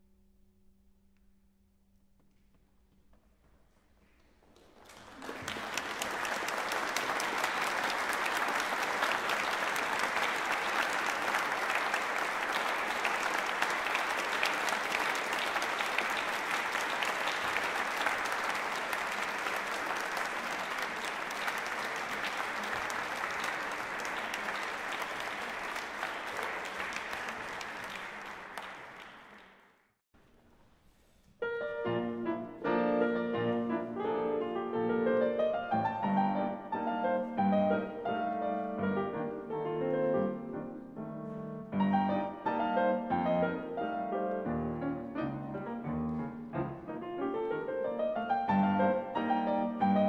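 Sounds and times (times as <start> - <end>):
audience applauding: 4.4 - 30.0.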